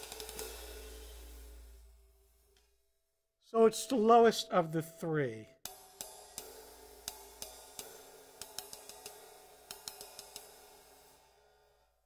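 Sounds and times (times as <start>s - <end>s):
ride cymbal stick clicks: 0.0s - 1.6s, 5.7s - 11.3s
cymbal wash: 0.0s - 2.5s, 5.7s - 12.0s.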